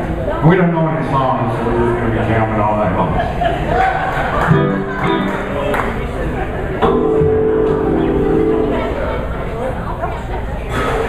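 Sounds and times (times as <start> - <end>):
crowd chatter and talking: 0.0 - 11.0
bass guitar notes: 4.5 - 5.8, 6.8 - 9.5
electric guitar notes: 4.5 - 5.8, 6.8 - 9.5.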